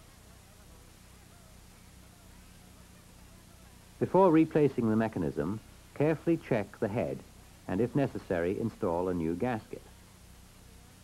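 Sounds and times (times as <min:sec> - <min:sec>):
old film soundtrack hum and hiss: 0:00.0 - 0:11.0.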